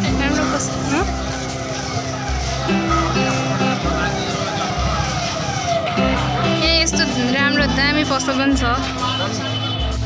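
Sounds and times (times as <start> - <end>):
music with long held notes: 0.0 - 10.0
street noise: 0.0 - 10.0
voice: 6.5 - 9.3.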